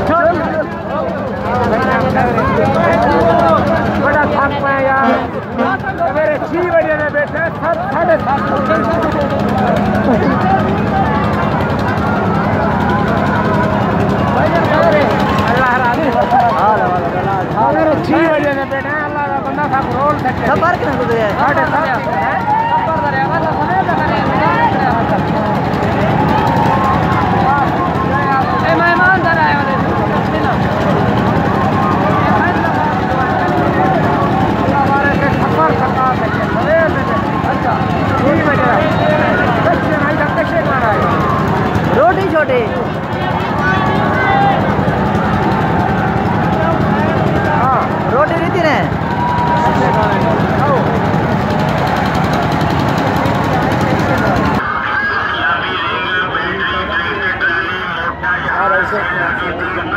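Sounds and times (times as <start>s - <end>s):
low drone of running machinery: 0.0s - 54.6s
low mechanical rumble: 0.0s - 54.6s
men talking: 0.0s - 59.9s
people chattering: 0.0s - 59.9s.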